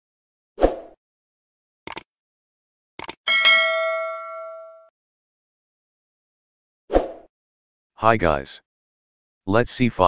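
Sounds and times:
mouse clicks: 3.0s - 3.2s
notification bell ding: 3.3s - 4.9s.

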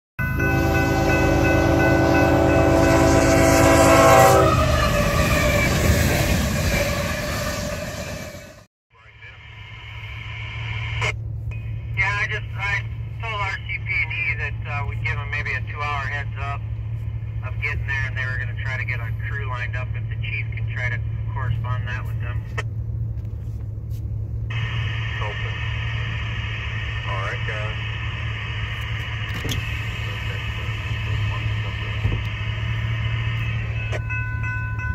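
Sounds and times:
train air horn chord: 0.2s - 5.1s
train rumble: 0.2s - 34.9s
voices over a radio: 8.9s - 11.2s, 11.9s - 16.6s, 17.4s - 22.6s, 24.5s - 28.0s, 28.6s - 32.4s
low hum inside a car: 9.0s - 34.9s.

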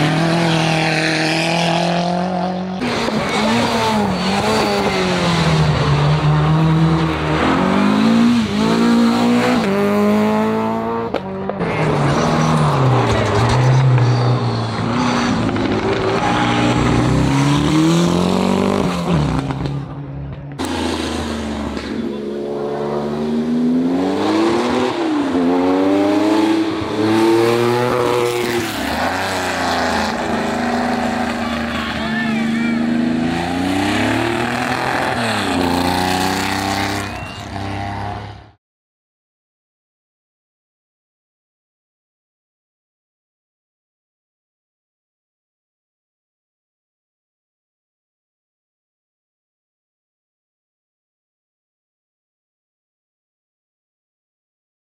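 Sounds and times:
race car engines revving: 0.0s - 38.6s.

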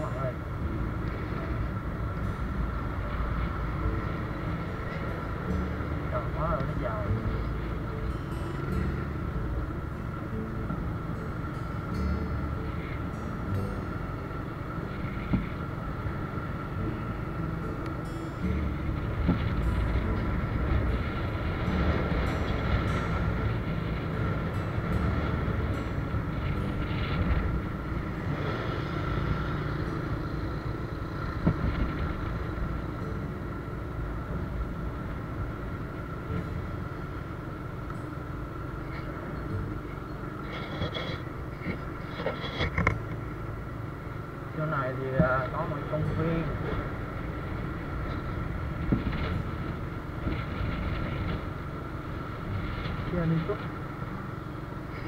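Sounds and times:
motorbike engine hum: 0.0s - 55.0s
steady high-pitched tone: 0.0s - 55.0s
tyre and road noise: 0.0s - 55.0s
wind rumble on microphone: 0.0s - 55.0s.

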